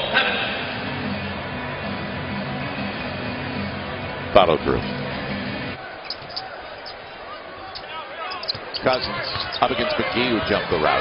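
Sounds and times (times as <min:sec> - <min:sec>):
crowd noise: 0:00.0 - 0:11.0
sneaker squeaks on hardwood: 0:06.1 - 0:07.0, 0:07.8 - 0:10.1.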